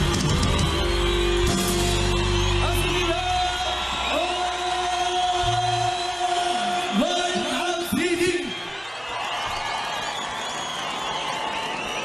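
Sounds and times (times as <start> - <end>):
live band music: 0.0 - 4.0.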